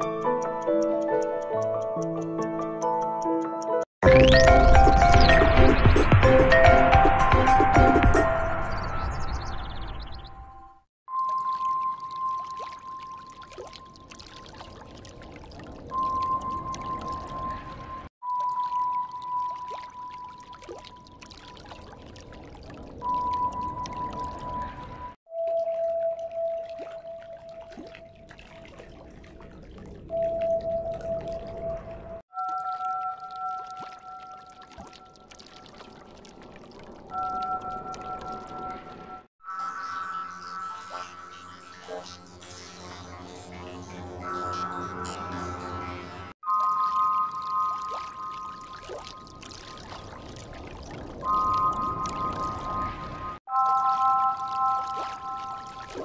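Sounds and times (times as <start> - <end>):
scattered clicks: 0.0 - 3.8
held electronic tone: 37.2 - 49.4, 51.2 - 56.0.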